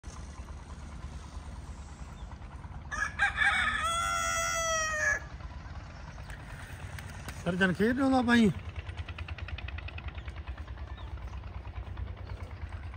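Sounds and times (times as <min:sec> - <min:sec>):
low background rumble: 0:00.0 - 0:12.9
rooster crowing: 0:02.8 - 0:05.3.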